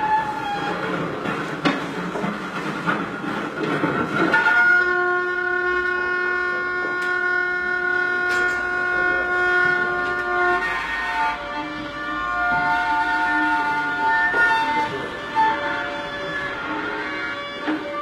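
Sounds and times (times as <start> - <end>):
bowed electric string drone: 4.3 - 18.0.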